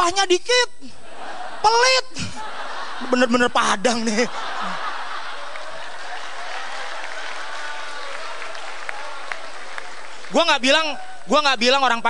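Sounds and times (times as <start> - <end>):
audience applauding: 4.6 - 11.3.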